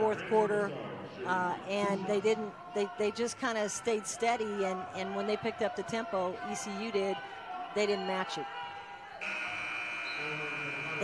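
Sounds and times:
arena buzzer long high tone: 0:09.2 - 0:11.0.

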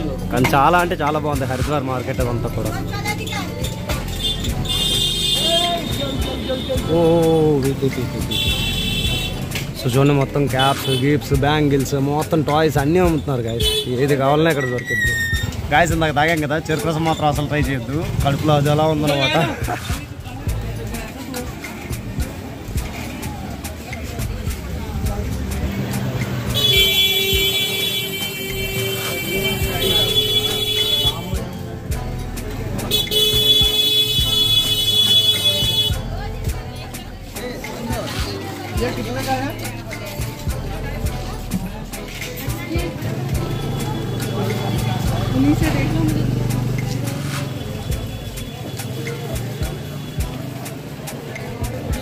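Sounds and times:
voices: 0:00.0 - 0:52.0.

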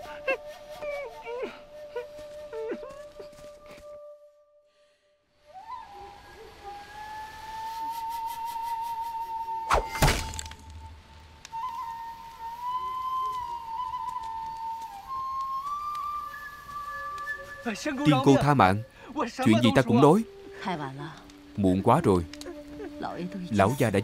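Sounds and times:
knife striking tree trunk: 0:09.7 - 0:10.8.

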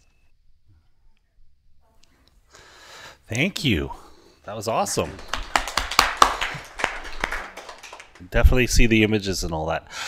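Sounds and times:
people clapping: 0:04.7 - 0:08.6.

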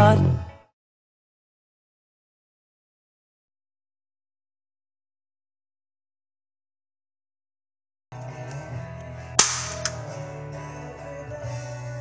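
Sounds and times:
guitar music: 0:08.2 - 0:11.0
small click: 0:08.4 - 0:09.1, 0:09.7 - 0:10.0.

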